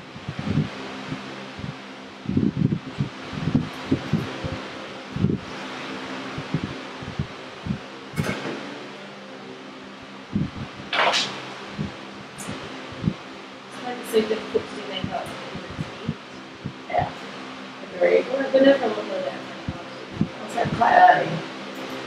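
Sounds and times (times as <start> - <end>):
electric fan whooshing: 0.0 - 22.0.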